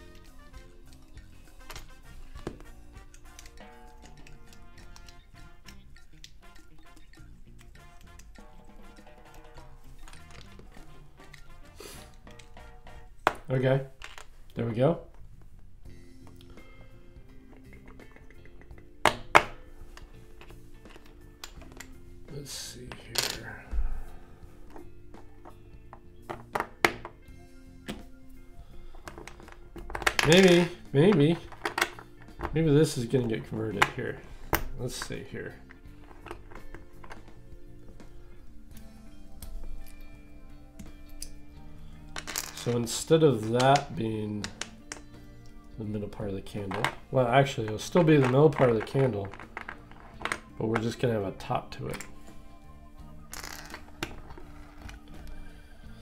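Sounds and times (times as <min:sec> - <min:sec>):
background music: 0:00.0 - 0:56.0.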